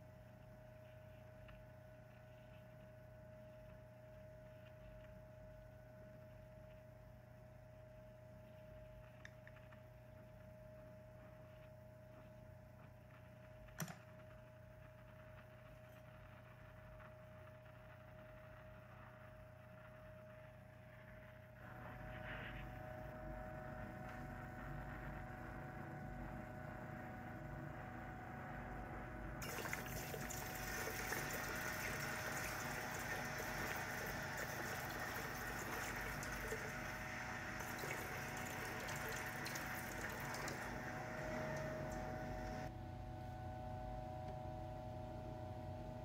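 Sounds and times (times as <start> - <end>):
torch flame: 13.1 - 42.7
molten metal sizzling in water: 29.4 - 42.7.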